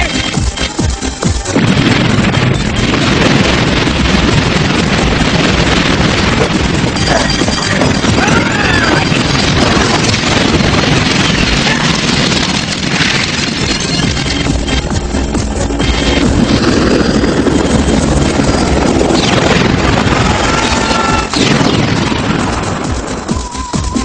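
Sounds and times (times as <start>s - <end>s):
rumbling and crashing noise: 0.0s - 24.0s.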